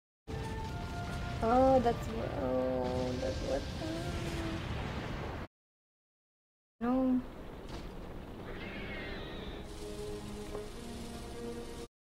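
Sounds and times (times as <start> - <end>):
low steady rumble: 6.8 - 9.1.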